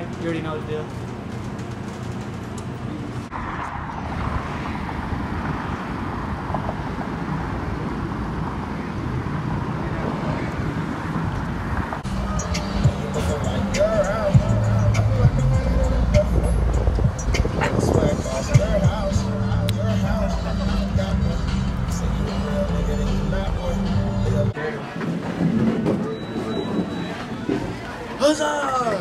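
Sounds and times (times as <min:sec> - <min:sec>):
cars passing on busy street: 0:00.0 - 0:29.0
voices: 0:12.0 - 0:29.0.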